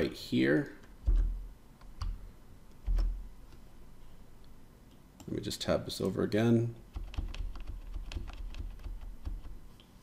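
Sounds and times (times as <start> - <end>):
computer keyboard clicks: 6.9 - 9.6.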